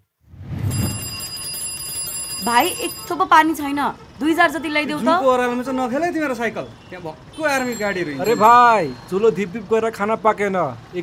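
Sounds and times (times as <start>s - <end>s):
high steady ringing tones: 0.7s - 10.4s.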